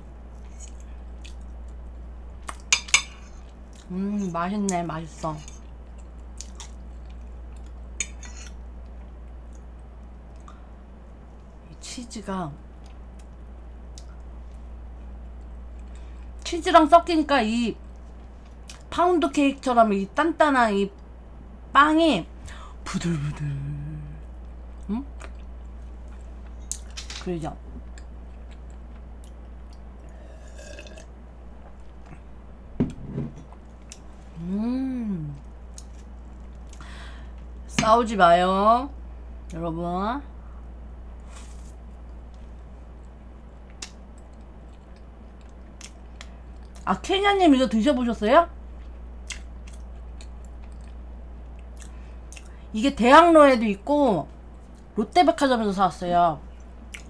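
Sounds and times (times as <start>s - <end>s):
low hum: 0.0s - 57.0s
chewing soft cake: 0.2s - 2.7s, 24.3s - 26.9s, 27.9s - 31.0s, 35.4s - 36.8s, 41.2s - 46.9s, 48.7s - 52.6s, 56.5s - 57.0s.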